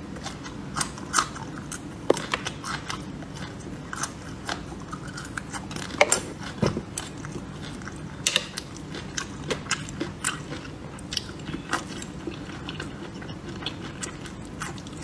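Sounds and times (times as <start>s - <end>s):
person chewing: 0.2s - 15.0s.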